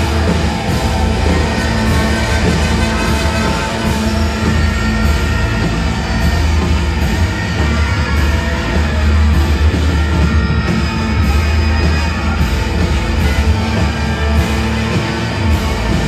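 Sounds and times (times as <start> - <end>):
brass band playing: 0.0 - 16.0
live rock band: 0.0 - 16.0.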